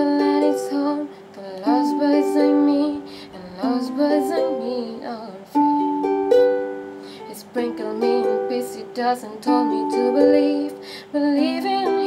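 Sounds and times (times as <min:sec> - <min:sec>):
ukulele chords strummed: 0:00.0 - 0:12.0.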